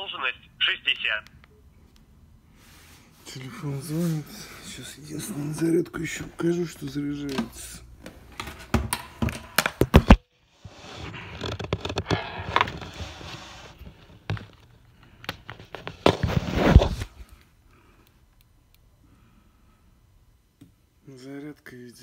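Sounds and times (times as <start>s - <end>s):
rustling and scraping: 10.6s - 14.6s, 15.5s - 17.2s.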